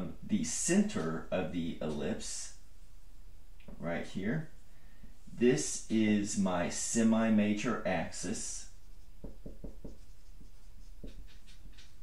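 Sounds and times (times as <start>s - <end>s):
marker writing on whiteboard: 8.0s - 12.0s.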